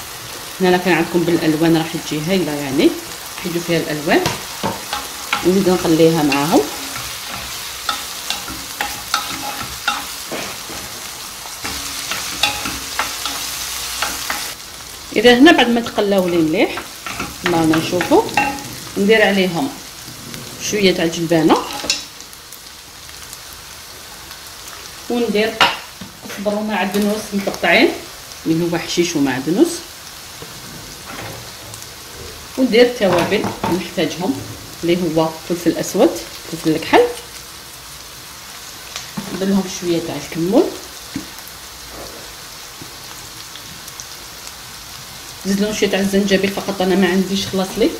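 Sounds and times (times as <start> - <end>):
food sizzling in a frying pan: 0.0 - 47.9
wooden spoon scraping a pan: 3.6 - 14.6, 15.7 - 22.2.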